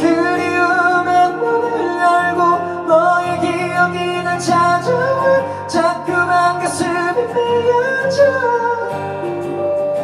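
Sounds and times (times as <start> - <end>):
man singing: 0.0 - 9.3
acoustic guitar: 0.0 - 10.0
keyboard: 0.0 - 10.0.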